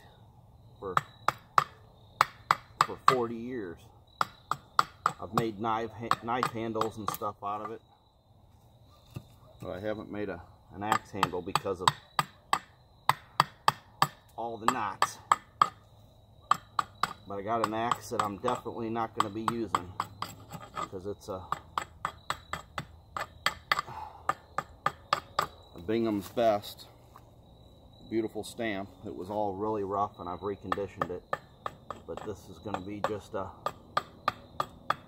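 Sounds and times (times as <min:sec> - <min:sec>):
hatchet chopping hard wood: 0:01.0 - 0:03.3, 0:04.2 - 0:07.7, 0:10.9 - 0:15.8, 0:16.5 - 0:25.6, 0:30.7 - 0:35.0.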